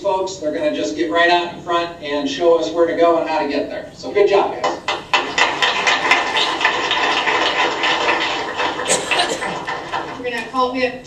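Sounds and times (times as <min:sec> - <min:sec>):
audience applauding: 0:04.8 - 0:10.2.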